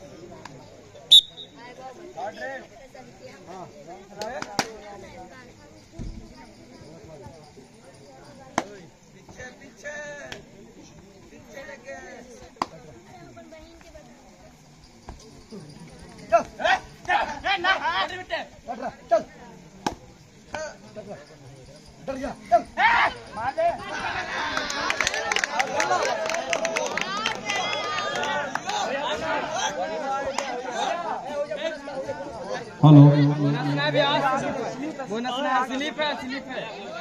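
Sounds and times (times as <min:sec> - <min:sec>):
men chattering and calling out: 0:14.6 - 0:37.0.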